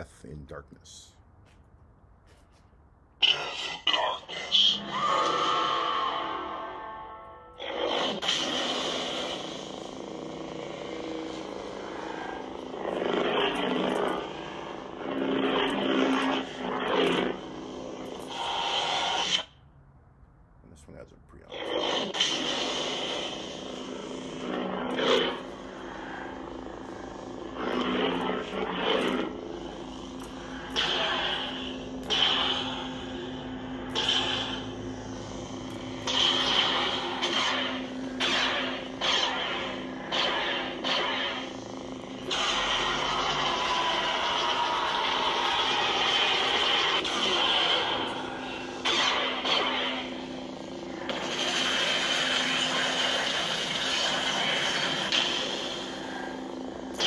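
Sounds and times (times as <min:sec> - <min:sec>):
lightsaber low hum: 0:03.1 - 0:19.7, 0:20.5 - 0:57.0
lightsaber swing sounds: 0:10.6 - 0:19.5, 0:21.5 - 0:50.3.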